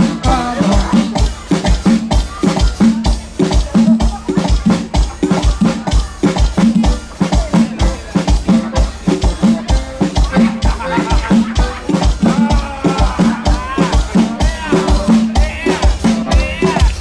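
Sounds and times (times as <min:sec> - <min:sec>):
accordion: 0:00.0 - 0:17.0
drum kit beat: 0:00.0 - 0:17.0
guitar: 0:00.0 - 0:17.0.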